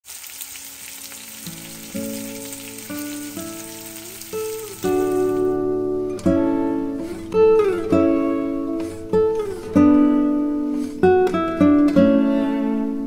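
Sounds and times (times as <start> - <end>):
chicken sizzling on grill pan: 0.0 - 5.5
plucked guitar music: 0.6 - 13.0.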